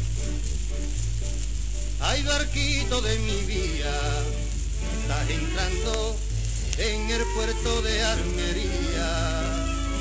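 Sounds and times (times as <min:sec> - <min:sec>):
low hum: 0:00.0 - 0:10.0
record surface hiss and crackle: 0:00.0 - 0:10.0
song on gramophone record: 0:00.0 - 0:10.0.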